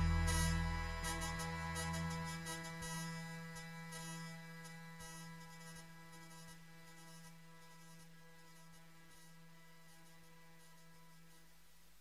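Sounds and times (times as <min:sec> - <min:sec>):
background music: 0:00.0 - 0:05.0
faint steady hum: 0:00.0 - 0:12.0.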